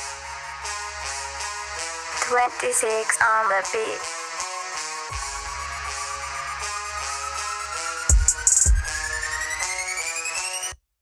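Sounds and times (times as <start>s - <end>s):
drill instrumental build-up: 4.0s - 10.8s
beat dropping: 8.1s - 9.5s.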